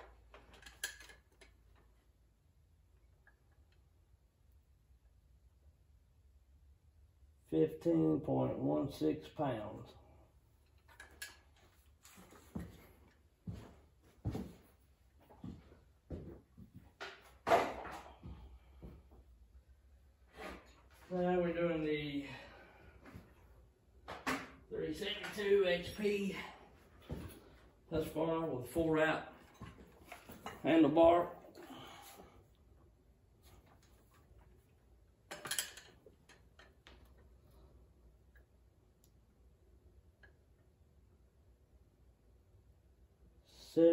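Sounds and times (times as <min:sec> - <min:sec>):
handling knocks and clunks: 0:15.4 - 0:18.4.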